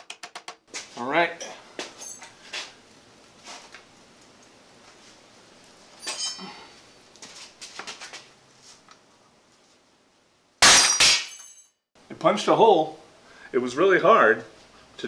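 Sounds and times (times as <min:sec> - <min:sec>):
metallic clinks and knocks: 0:01.8 - 0:02.4, 0:06.0 - 0:06.5.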